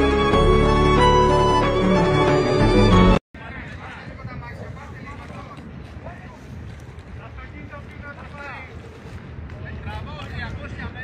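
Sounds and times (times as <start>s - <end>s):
people talking: 3.4s - 11.0s
wind on microphone: 3.4s - 11.0s.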